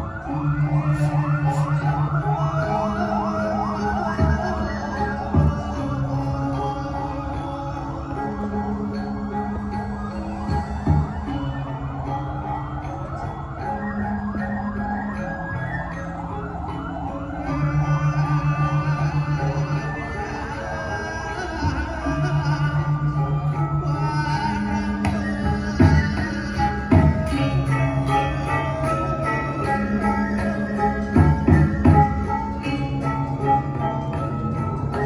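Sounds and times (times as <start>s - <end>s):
gamelan music: 0.0s - 35.0s.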